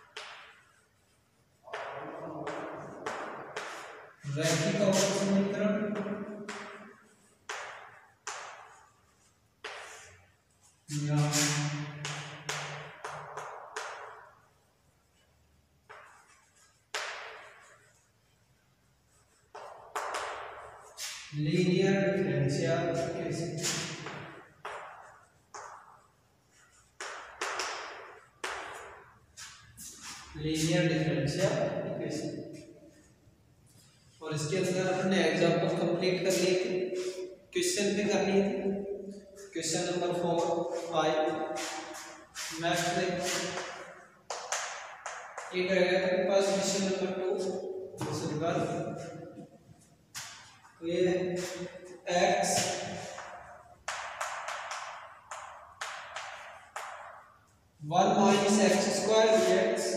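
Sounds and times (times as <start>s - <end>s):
chalk writing on blackboard: 0.0s - 14.4s, 15.8s - 21.4s, 22.9s - 30.8s, 39.4s - 45.5s.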